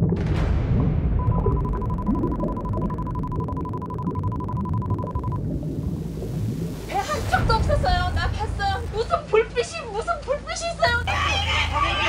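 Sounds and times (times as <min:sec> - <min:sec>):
low rumbling hum: 0:00.0 - 0:12.0
steady high beep tone: 0:01.2 - 0:05.4.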